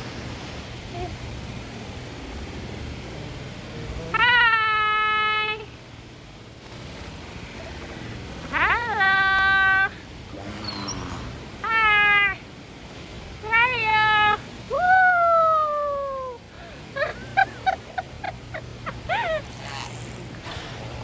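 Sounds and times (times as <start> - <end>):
beluga whale whistle-like calls: 10.4 - 12.2.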